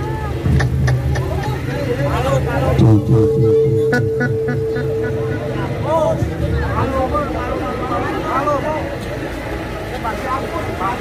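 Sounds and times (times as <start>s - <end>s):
low steady drone: 0.0s - 9.9s
crowd voices: 0.0s - 11.0s
frame drums beating: 0.4s - 7.1s
wavering high melody: 2.8s - 8.2s.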